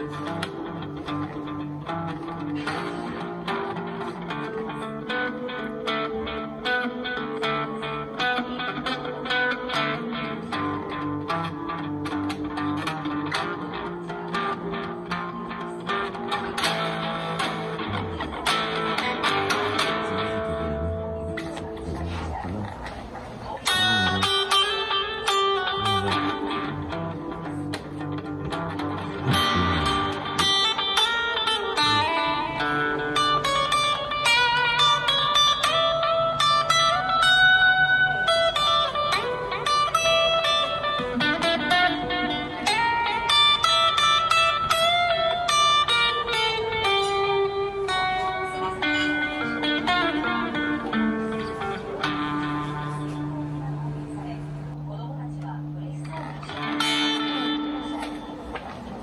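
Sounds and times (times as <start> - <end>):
electric guitar playing blues: 0.0 - 59.0.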